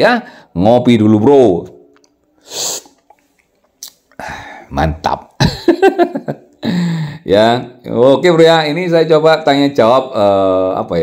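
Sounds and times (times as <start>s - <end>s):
man slurping coffee: 2.4s - 3.5s
puff of breath: 6.6s - 7.2s.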